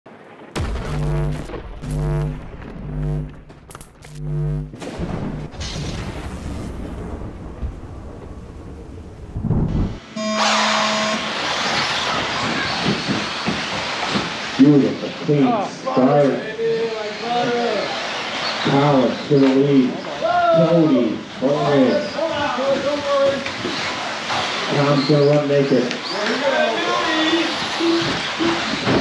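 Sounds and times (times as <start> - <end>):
thunder-like boom: 0.5 - 3.7, 4.3 - 10.0
intro music with heavy hits: 0.6 - 5.9
brief tone: 4.0 - 4.7, 10.1 - 11.3.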